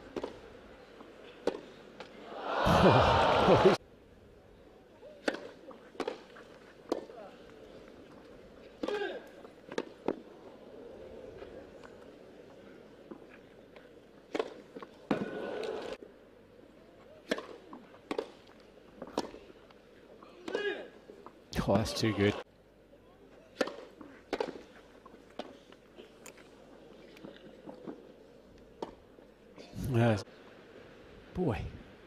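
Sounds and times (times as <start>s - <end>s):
players grunting: 2.2s - 3.8s
racket hitting ball: 5.2s - 6.2s, 23.6s - 24.6s.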